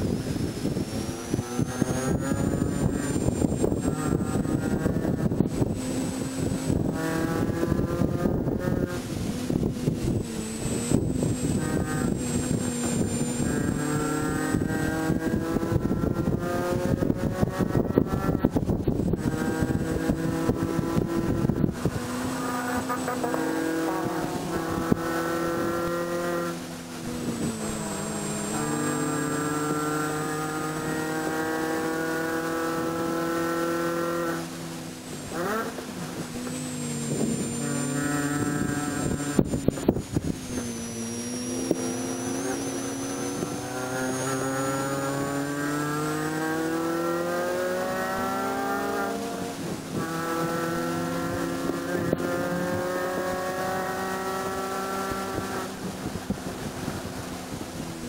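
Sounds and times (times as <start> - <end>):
car engine revving: 0.0 - 58.0.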